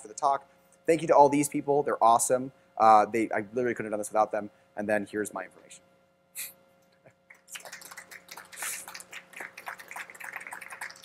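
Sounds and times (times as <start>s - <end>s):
audience applause: 7.4s - 11.0s.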